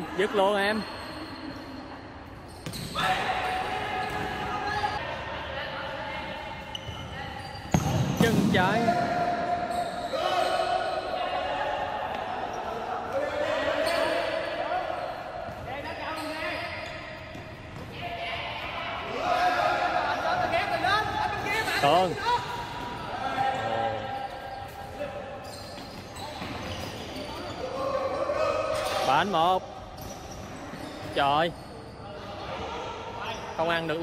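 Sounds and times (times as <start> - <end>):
players shouting: 8.6 - 15.3, 17.9 - 24.1
shoes squeaking on wooden floor: 25.4 - 27.6.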